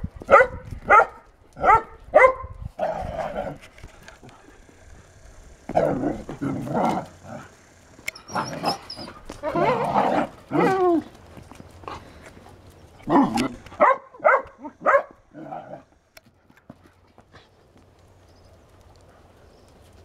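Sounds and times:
puppies barking and yapping: 0:00.2 - 0:16.0.

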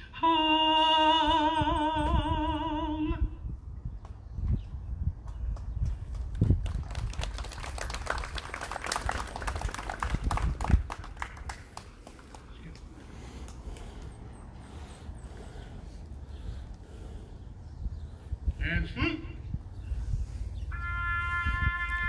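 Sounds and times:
crowd applauding: 0:06.2 - 0:12.9.

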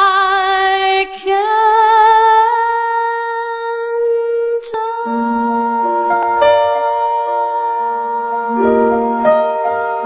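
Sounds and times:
woman singing sustained note: 0:03.8 - 0:10.0
soft keyboard chords: 0:05.1 - 0:10.0.

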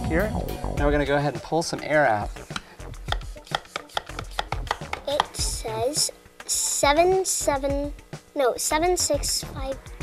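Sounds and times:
hand vacuum pump clicking: 0:03.1 - 0:05.3.

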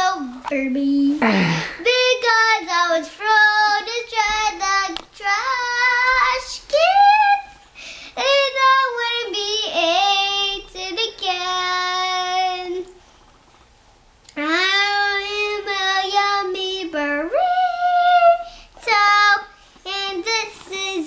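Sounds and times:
young child singing: 0:00.0 - 0:00.4, 0:01.7 - 0:07.6, 0:08.2 - 0:13.0, 0:14.3 - 0:21.0.

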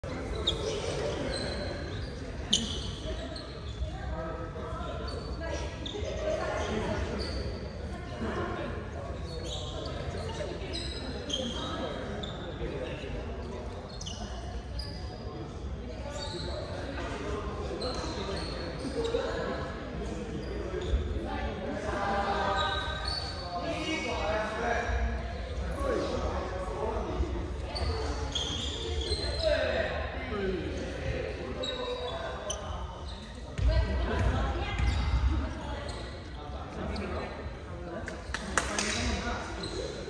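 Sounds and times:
sports shoes squeaking: 0:00.0 - 0:07.9, 0:09.0 - 0:17.0, 0:17.8 - 0:19.7, 0:20.3 - 0:21.2, 0:22.5 - 0:24.1, 0:27.1 - 0:29.8, 0:30.8 - 0:37.5, 0:38.1 - 0:40.0
voices and chatter: 0:00.0 - 0:40.0
balls bouncing on wooden court: 0:33.6 - 0:35.4.

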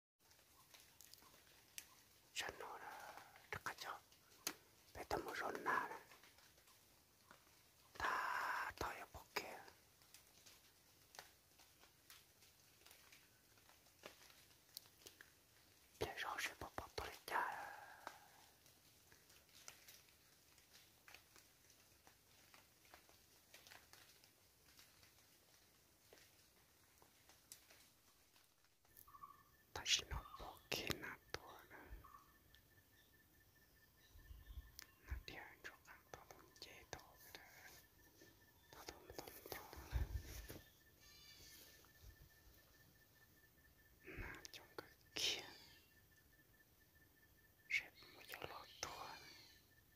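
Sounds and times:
person whispering: 0:02.3 - 0:06.4, 0:07.8 - 0:09.8, 0:15.9 - 0:18.6, 0:29.7 - 0:32.3, 0:34.8 - 0:41.9, 0:44.0 - 0:45.9, 0:47.7 - 0:49.6.

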